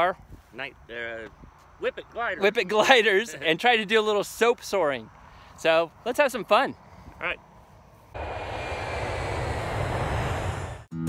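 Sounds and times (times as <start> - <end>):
rushing whoosh roar: 8.2 - 10.9.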